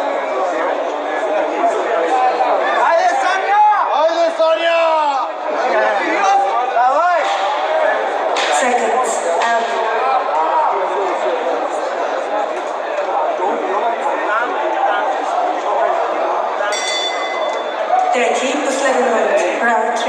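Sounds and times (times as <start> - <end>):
arena crowd talking: 0.0 - 20.0.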